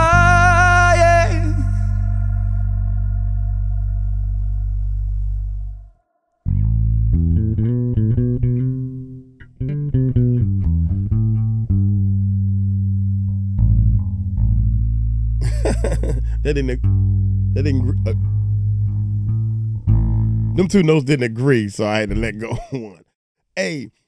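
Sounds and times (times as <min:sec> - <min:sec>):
backing song: 0:00.0 - 0:05.6, 0:15.4 - 0:16.9, 0:17.6 - 0:18.2, 0:20.0 - 0:22.9
electric bass notes: 0:00.0 - 0:05.9, 0:06.5 - 0:22.5.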